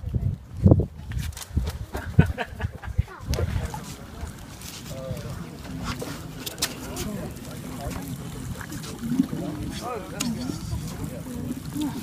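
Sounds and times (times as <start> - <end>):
low rumble of wind: 0.0 - 12.0
people talking indistinctly: 2.6 - 12.0.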